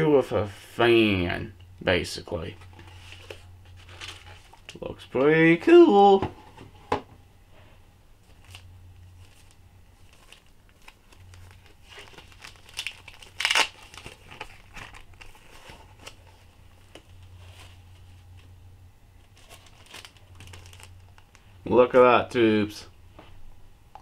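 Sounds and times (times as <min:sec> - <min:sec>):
bubble wrap crinkling: 0:08.2 - 0:18.5, 0:19.2 - 0:21.5.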